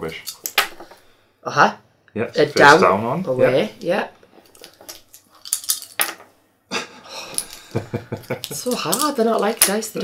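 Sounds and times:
wooden tiles clattering on table: 0.2s - 1.0s, 4.4s - 6.3s, 8.2s - 10.0s.

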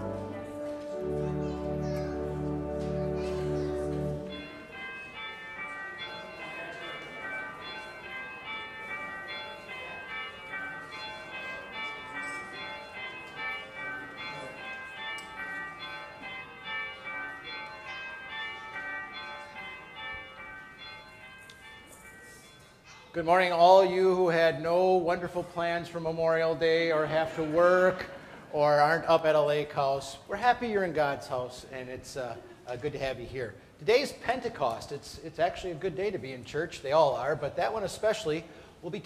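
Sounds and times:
church bells ringing: 0.0s - 39.0s.

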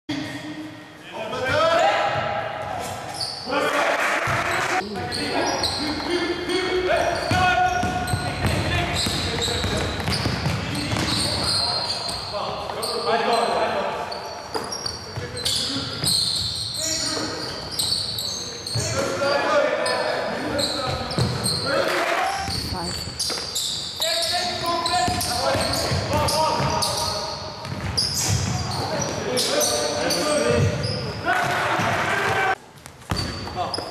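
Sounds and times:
sneaker squeaks: 1.4s - 33.9s
basketball bouncing on court: 7.2s - 12.3s, 20.9s - 21.6s, 25.0s - 26.9s, 27.6s - 29.2s, 33.1s - 33.8s.

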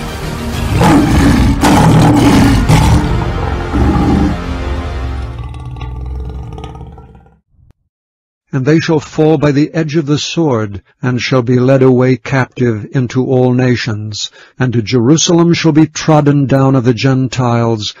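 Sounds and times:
dramatic trailer music: 0.0s - 5.7s
lion roar: 0.6s - 4.6s, 5.2s - 7.4s.

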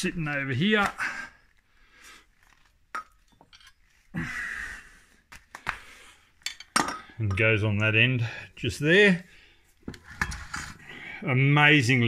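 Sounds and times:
metallic clink: 2.9s - 3.9s.

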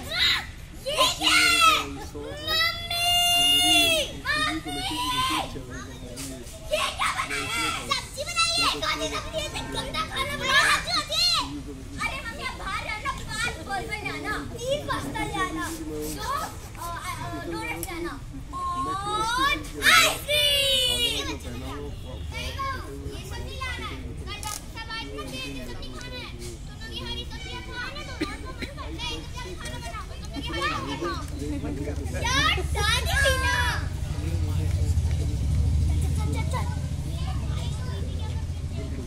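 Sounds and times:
children speaking: 0.0s - 39.0s.

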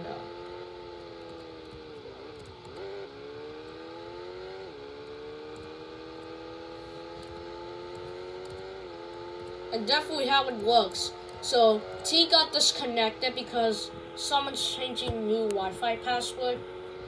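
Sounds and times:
video game car engine: 0.0s - 17.0s.

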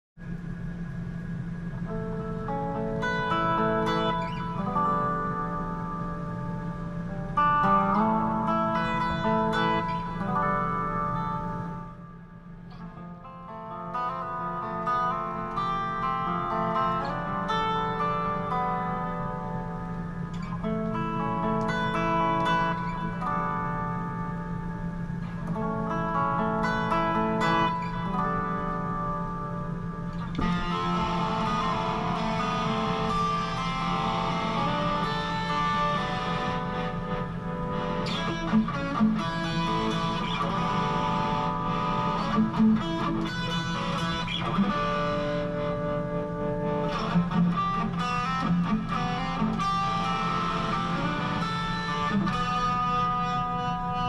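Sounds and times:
electric guitar solo: 0.2s - 54.0s.

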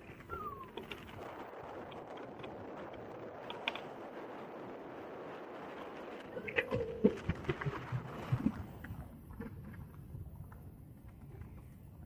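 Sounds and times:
faint clicks: 0.0s - 4.0s
tyre and wind noise: 0.0s - 12.0s.

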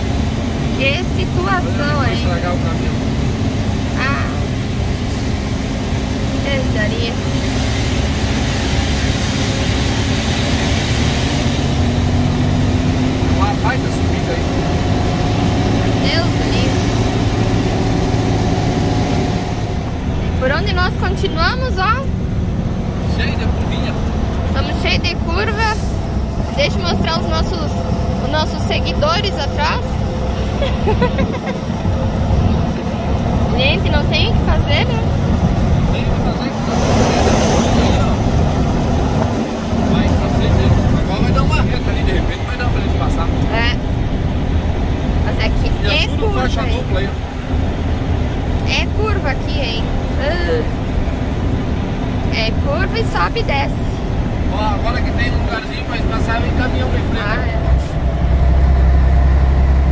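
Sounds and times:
indistinct voices: 0.0s - 4.8s, 13.2s - 22.2s, 22.9s - 44.4s, 45.1s - 51.0s, 52.1s - 59.2s
diesel truck engine running: 0.0s - 59.9s
road noise: 0.0s - 59.9s.

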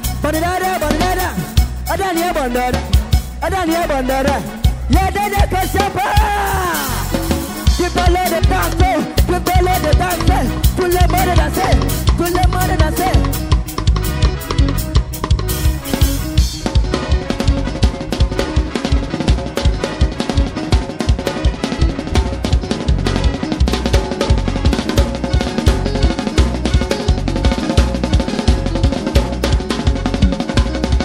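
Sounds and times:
held keyboard chords: 0.0s - 31.0s.

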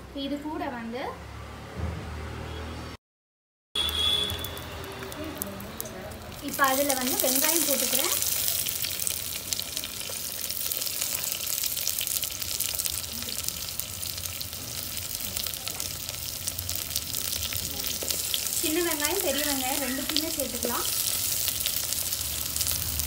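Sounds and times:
onions sizzling in hot oil: 3.8s - 23.0s.

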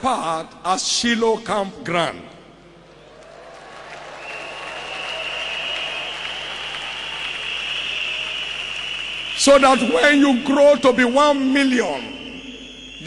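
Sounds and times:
large congregation applauding: 3.0s - 10.9s.

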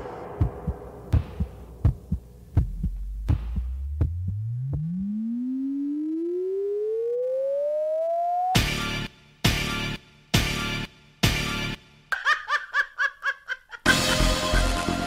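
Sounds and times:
rising electronic tone: 3.8s - 8.6s.

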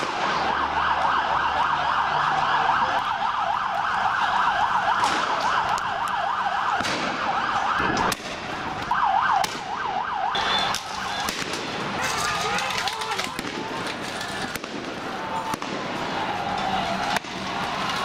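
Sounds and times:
police siren: 0.0s - 18.0s
sharp cracks: 4.9s - 9.8s, 10.4s - 18.0s.

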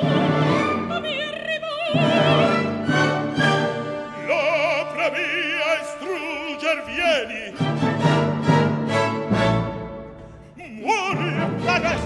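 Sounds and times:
male opera singer with vibrato: 4.0s - 7.8s, 10.5s - 12.0s.

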